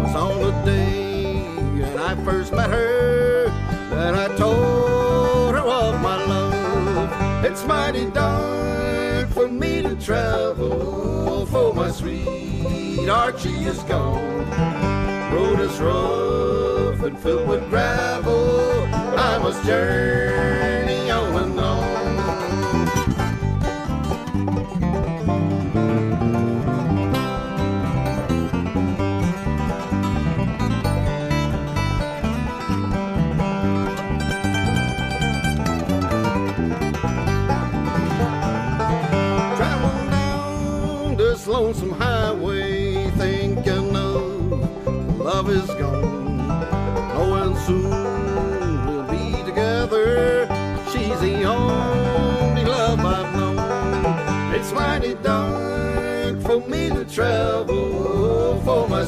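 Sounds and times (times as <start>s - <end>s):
bluegrass instrumental: 0.0s - 59.0s.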